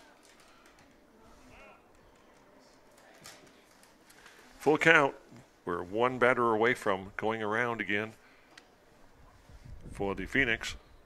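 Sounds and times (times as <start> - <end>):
faint far-off voice: 0.0 - 4.7.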